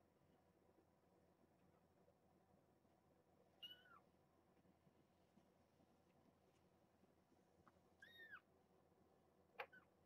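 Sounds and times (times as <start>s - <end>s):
kitten mewing: 3.6s - 4.0s.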